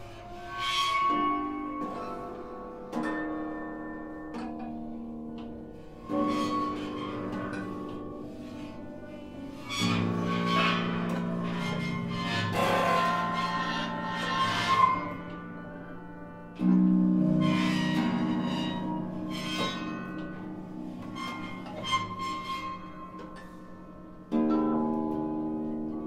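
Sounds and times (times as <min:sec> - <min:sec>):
grand piano: 0:00.0 - 0:26.0
harp: 0:00.0 - 0:26.0.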